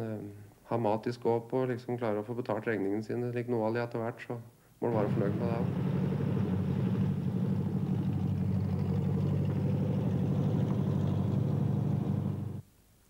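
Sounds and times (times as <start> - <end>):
car engine running: 4.9 - 12.6.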